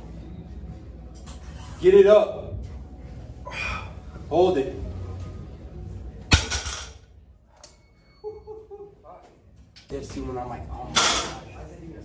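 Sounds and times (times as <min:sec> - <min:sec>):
barbell crashing on floor: 0:06.3 - 0:07.0.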